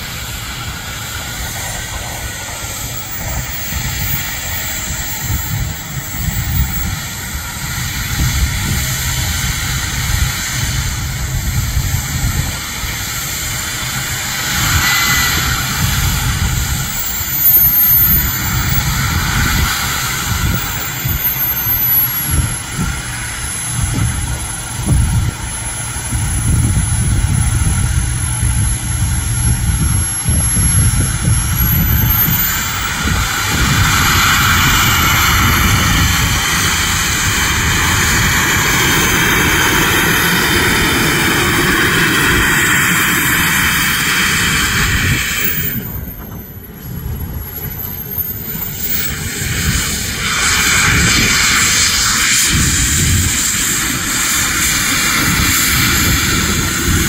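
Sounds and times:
model jet engine whine: 0:00.0 - 0:57.0
wind rumble on microphone: 0:00.0 - 0:57.0.

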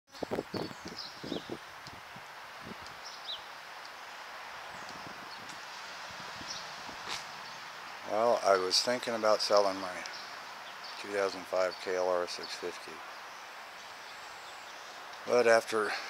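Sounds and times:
outdoor background noise: 0:00.1 - 0:16.0.

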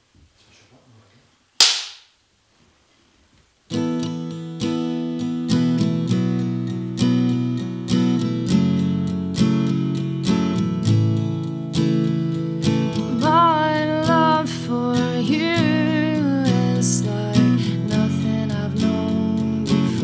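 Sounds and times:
acoustic guitar picked chords: 0:03.7 - 0:20.0.

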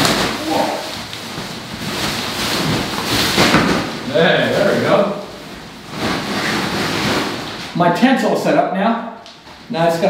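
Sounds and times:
nylon tent fabric rustling: 0:00.0 - 0:07.8.

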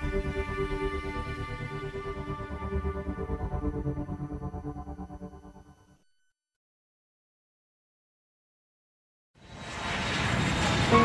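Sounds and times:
rushing swell: 0:09.4 - 0:11.0.

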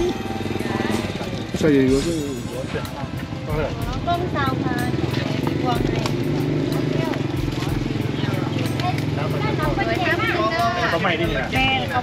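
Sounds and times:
people talking: 0:00.6 - 0:12.0.

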